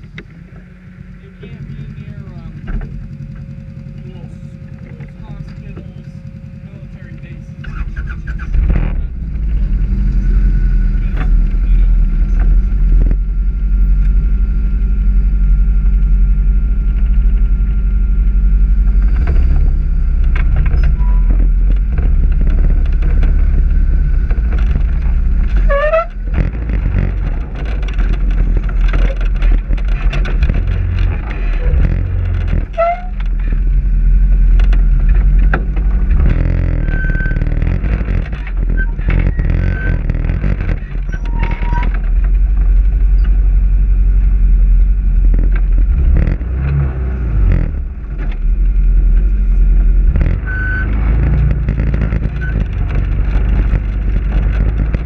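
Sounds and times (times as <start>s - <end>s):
off-road vehicle engine rumbling: 0.0s - 55.0s
short rising squeaks: 19.0s - 33.7s, 36.0s - 42.0s, 50.2s - 55.0s.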